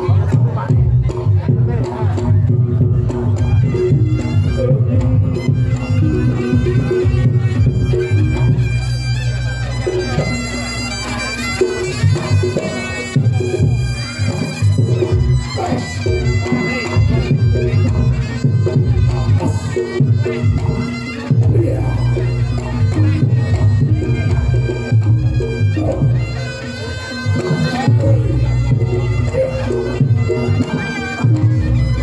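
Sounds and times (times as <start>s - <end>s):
drums and gongs: 0.0s - 32.0s
shawm wailing melody: 0.0s - 32.0s.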